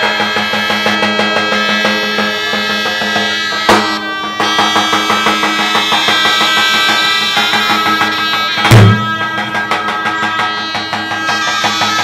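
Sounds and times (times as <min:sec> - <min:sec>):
drone and melody: 0:00.0 - 0:12.0
quick drum beats: 0:00.0 - 0:12.0.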